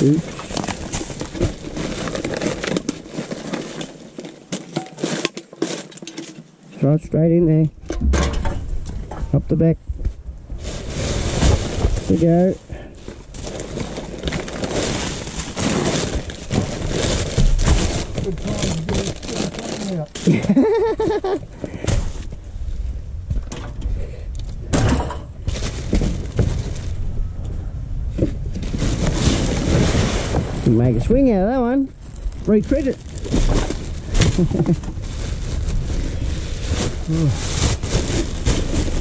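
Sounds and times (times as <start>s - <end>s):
plastic bags and paper rustling: 0.0s - 6.4s, 10.5s - 22.3s, 25.4s - 27.1s, 28.5s - 39.0s
objects knocking on metal bin: 7.9s - 9.3s.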